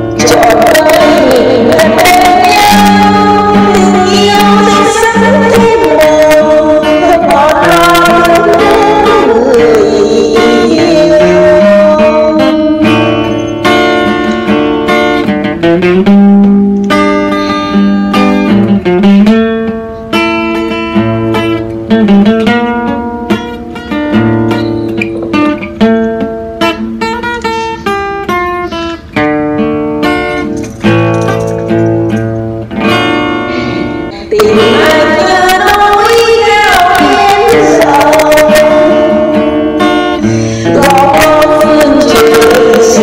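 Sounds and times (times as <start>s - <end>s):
acoustic guitar playing: 0.0s - 43.0s.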